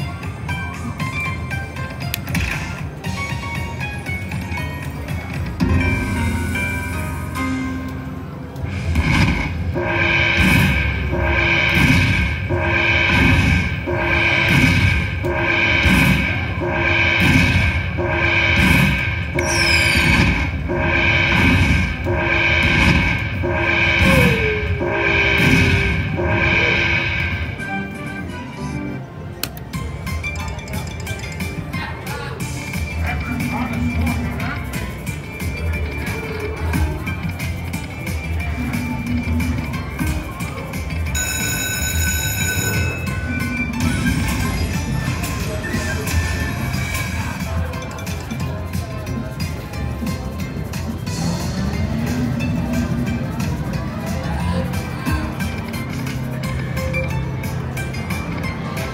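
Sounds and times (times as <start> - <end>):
slot machine music: 0.0 - 58.9
bright chime ringing: 19.3 - 20.8.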